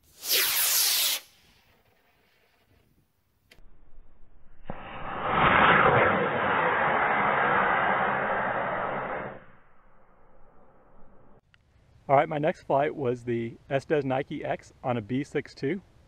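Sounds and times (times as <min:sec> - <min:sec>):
rocket motor rushing hiss: 0:00.0 - 0:01.7, 0:04.7 - 0:09.9.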